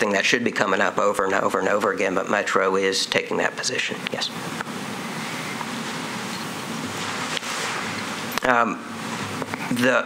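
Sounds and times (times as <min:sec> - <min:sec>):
microphone feed hiss: 0:00.0 - 0:10.0.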